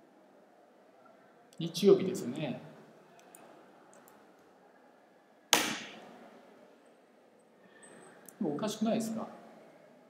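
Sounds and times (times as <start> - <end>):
keyboard key struck hard: 5.6 - 5.9.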